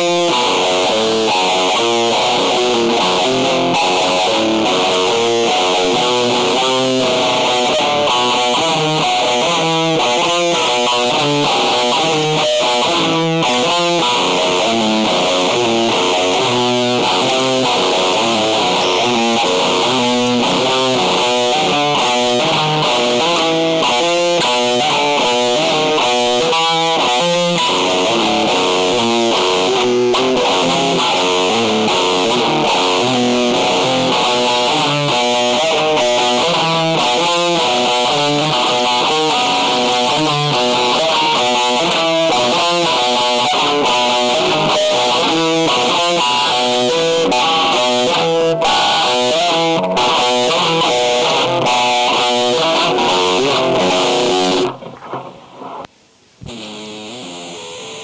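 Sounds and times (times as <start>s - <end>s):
distorted electric guitar music: 0.0s - 58.0s.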